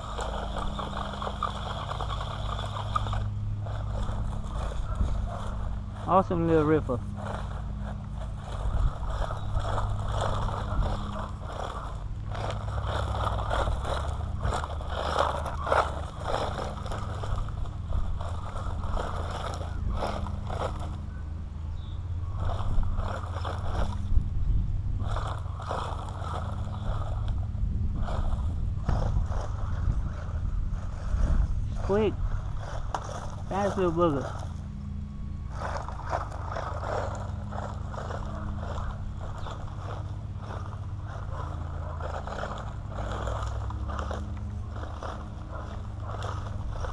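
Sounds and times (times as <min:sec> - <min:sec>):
electric toy truck driving: 0:00.0 - 0:46.9
low hum: 0:00.0 - 0:46.9.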